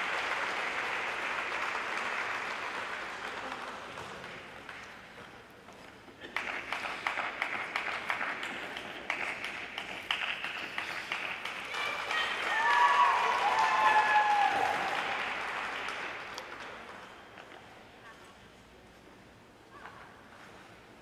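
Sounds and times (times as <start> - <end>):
audience applauding: 0.0 - 4.9, 6.2 - 17.1
whooping cheers: 11.7 - 15.2.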